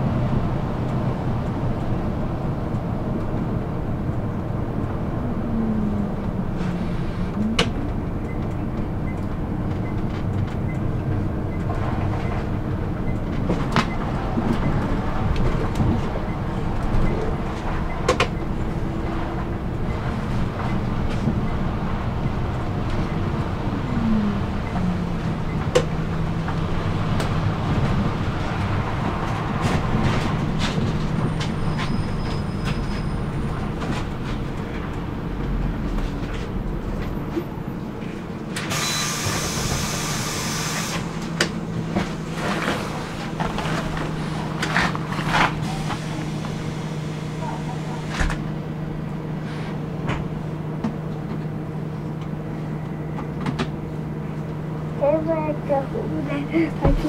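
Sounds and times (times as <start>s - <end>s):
bus engine and road noise: 0.0s - 57.0s.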